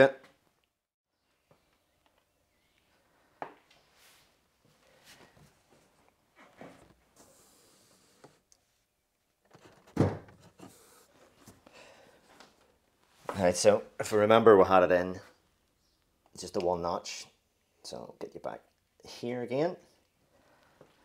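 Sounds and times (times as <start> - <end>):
man speaking: 0.0 - 0.3, 13.3 - 15.4, 16.4 - 19.9
sharp thunk: 10.0 - 10.4.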